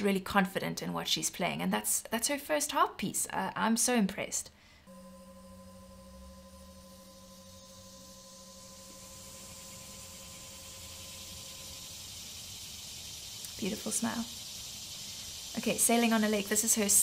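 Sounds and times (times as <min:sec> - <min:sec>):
faint steady hiss: 0:03.2 - 0:17.0
faint hum of held tones: 0:04.6 - 0:17.0.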